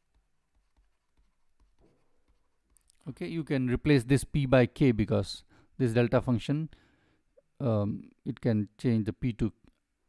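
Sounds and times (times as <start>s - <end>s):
stylus tapping on pen tablet: 0.0s - 2.9s.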